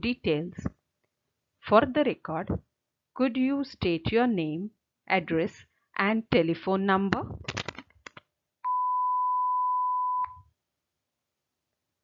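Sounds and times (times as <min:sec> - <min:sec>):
high electronic beep: 0:08.7 - 0:10.4.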